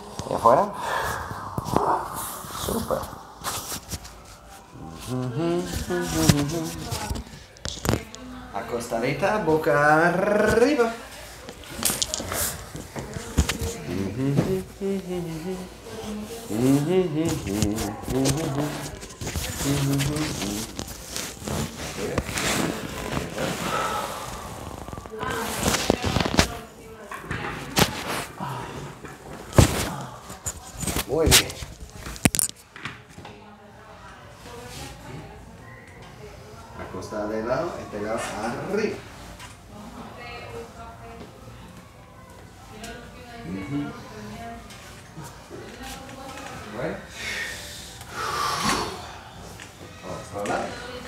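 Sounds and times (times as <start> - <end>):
rustling on vinyl table: 1.2 - 8.3, 10.2 - 28.4.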